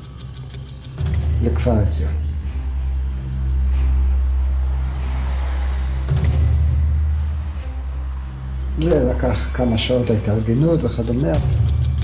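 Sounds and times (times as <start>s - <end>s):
truck engine rumbling: 0.0s - 12.0s.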